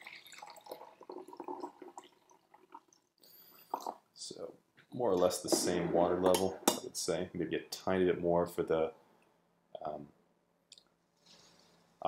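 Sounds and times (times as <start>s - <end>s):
tea pouring into a glass mug: 0.0s - 3.0s.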